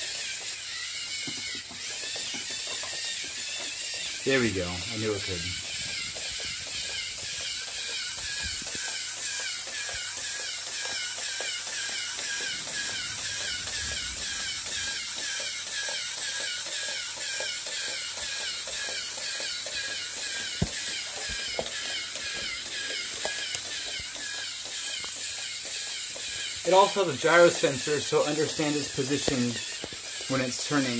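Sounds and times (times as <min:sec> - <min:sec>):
robot motors whining: 0:00.0 - 0:30.9.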